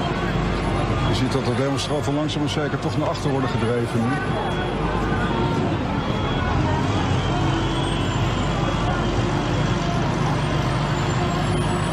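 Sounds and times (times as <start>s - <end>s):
large vehicle engine droning: 0.0s - 11.9s
people's voices: 0.0s - 11.9s.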